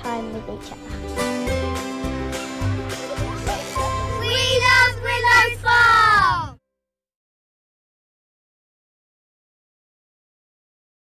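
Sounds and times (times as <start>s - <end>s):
children calling out in sung phrases: 4.2s - 6.6s.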